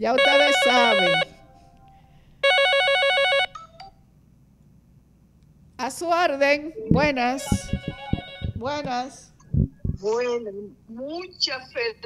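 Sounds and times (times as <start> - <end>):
mobile phone ringtone warbling: 0.2 - 1.4, 2.4 - 3.8, 7.4 - 8.6.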